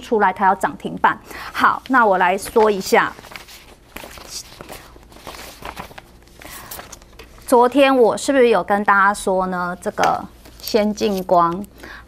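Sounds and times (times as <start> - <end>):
paper rustling: 1.8 - 7.9, 9.8 - 11.7.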